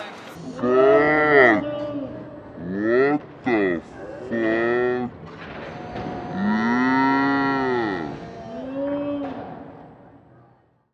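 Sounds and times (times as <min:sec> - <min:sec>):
moo-like call: 0:05.7 - 0:09.5.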